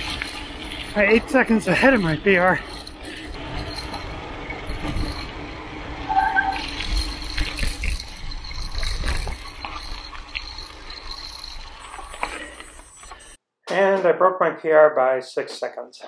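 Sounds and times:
bike rattling and knocking: 0:00.0 - 0:12.5
bike tyre noise: 0:00.0 - 0:13.4
short tone: 0:06.0 - 0:06.7.

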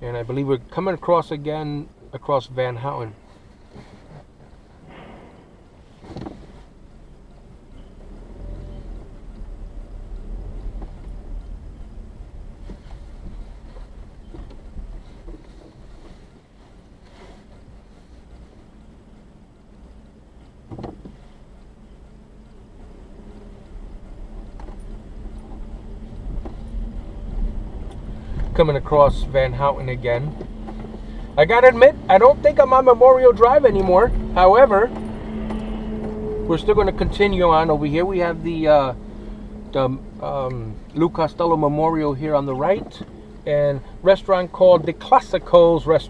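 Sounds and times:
car road and engine rumble: 0:00.0 - 0:46.0.

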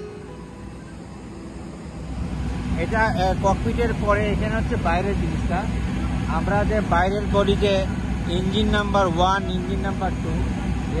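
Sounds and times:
low rumble of engine machinery: 0:00.0 - 0:11.0.

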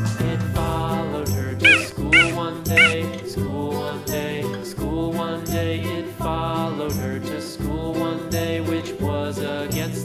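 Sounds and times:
cheerful background music: 0:00.0 - 0:10.0
cheetah chirping: 0:01.6 - 0:03.0.

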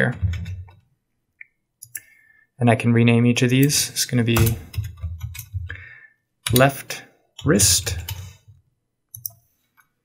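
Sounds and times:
keyboard and mouse clicks: 0:04.4 - 0:05.7, 0:06.4 - 0:06.8, 0:07.4 - 0:09.9.

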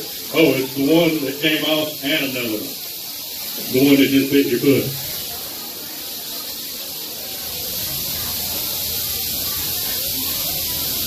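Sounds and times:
rattlesnakes rattling: 0:00.0 - 0:11.0.

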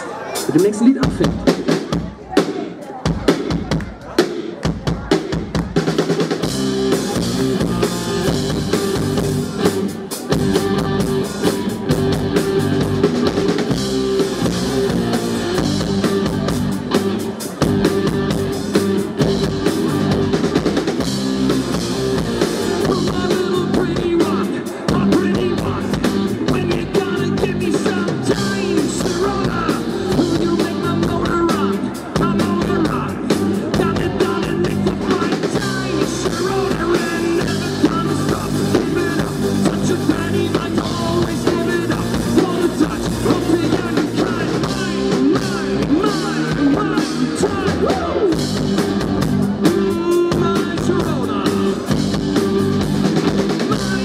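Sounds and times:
drum beats: 0:00.0 - 0:54.0
live rock band playing: 0:00.0 - 0:54.0.

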